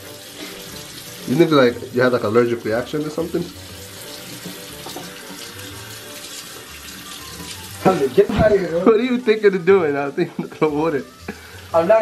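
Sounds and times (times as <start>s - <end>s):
water running from sink tap: 0.0s - 12.0s.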